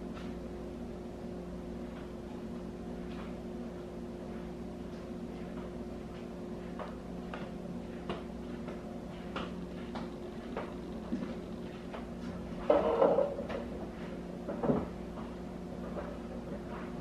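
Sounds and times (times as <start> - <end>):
steady low hum: 0.0 - 17.0
chair scraping on floor: 11.7 - 13.7.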